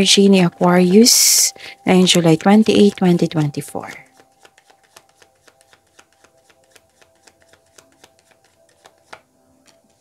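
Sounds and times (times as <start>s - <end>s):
cards being shuffled: 2.2s - 10.0s.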